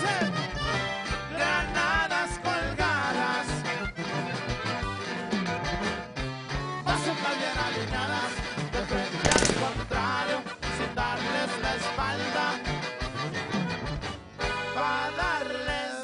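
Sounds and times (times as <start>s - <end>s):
accordion music with bass and drums: 0.0s - 16.0s.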